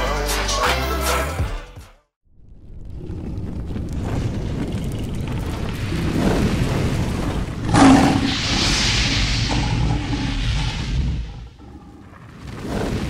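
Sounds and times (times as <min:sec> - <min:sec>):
low rumble: 0:02.3 - 0:12.6
boom with whoosh: 0:05.8 - 0:13.0
rushing fire-like hiss: 0:05.8 - 0:13.0.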